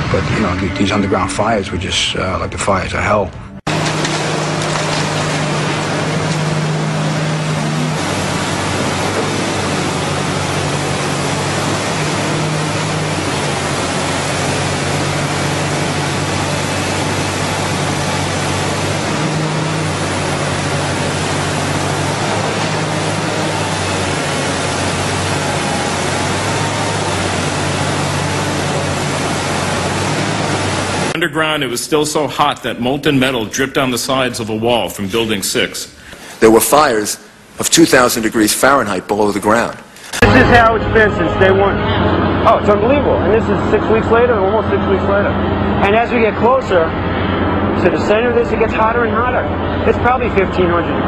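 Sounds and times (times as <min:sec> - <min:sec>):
excavator diesel engine running: 0:03.5 - 0:31.2, 0:40.2 - 0:51.0
loud steady rushing noise: 0:03.6 - 0:31.2, 0:40.2 - 0:51.0.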